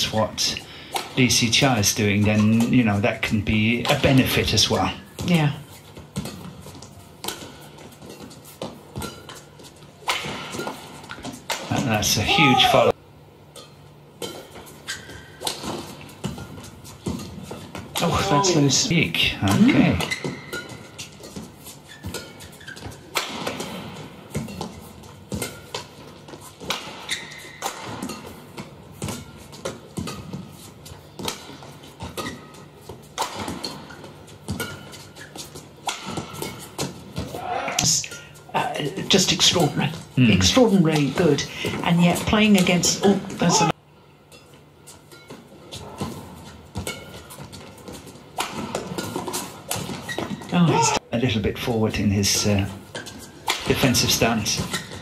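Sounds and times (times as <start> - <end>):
shoes squeaking on court: 4.7 - 11.5, 13.5 - 18.9, 19.6 - 37.4, 40.9 - 51.0, 52.4 - 55.0
racket hitting shuttlecock: 6.1 - 12.9, 13.5 - 18.7, 19.5 - 37.9, 45.1 - 51.0
shoe squeaks: 14.8 - 15.4, 19.8 - 23.1, 27.0 - 27.7, 32.2 - 32.9, 34.6 - 35.7, 49.9 - 51.0, 54.7 - 55.0.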